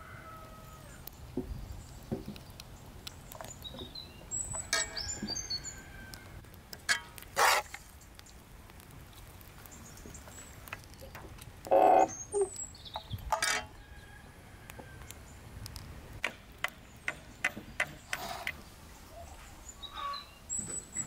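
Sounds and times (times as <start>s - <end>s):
small birds chirping: 0.8s - 6.3s, 9.4s - 15.8s, 16.4s - 21.0s
metal spoon scraping iron pan: 6.9s - 7.8s.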